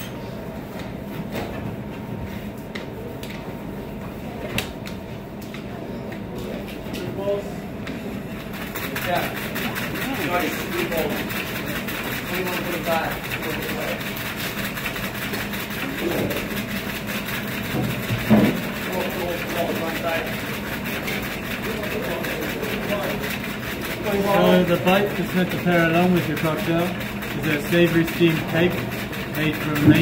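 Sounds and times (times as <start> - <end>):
metal shaker cups chattering: 8.5 - 17.7, 18.6 - 30.0.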